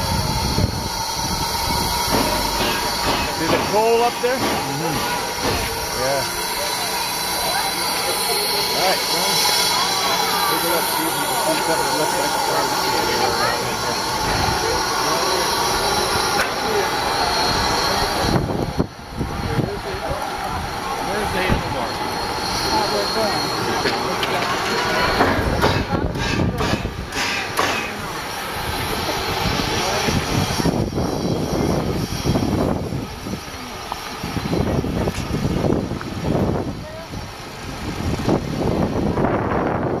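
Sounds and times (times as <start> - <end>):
crowd chatter: 0.0 - 40.0
steam locomotive hissing steam: 0.0 - 40.0.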